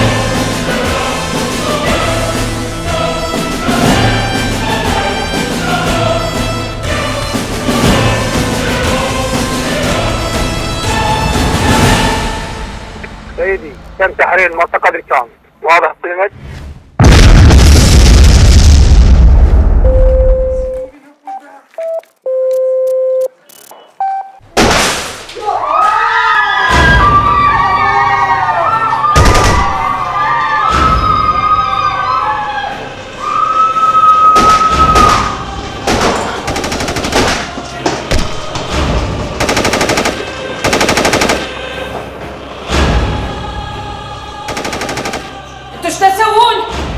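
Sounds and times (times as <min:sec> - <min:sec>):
dramatic music: 0:00.0 - 0:13.6, 0:26.7 - 0:46.9
explosion with deep rumble: 0:17.0 - 0:20.2
beep-like tones: 0:19.8 - 0:24.4.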